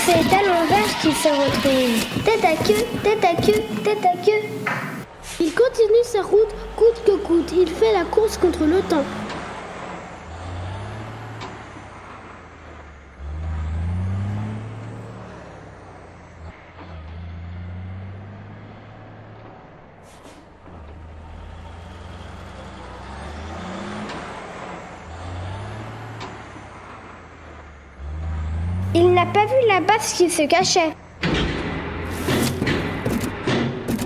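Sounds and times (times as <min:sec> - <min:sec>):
truck engine revving: 0:00.0 - 0:34.0.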